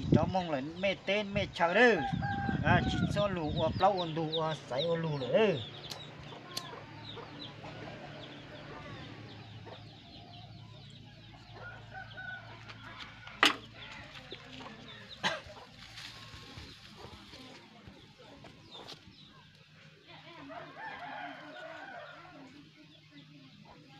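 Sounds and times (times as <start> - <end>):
chickens clucking: 2.0 - 23.9.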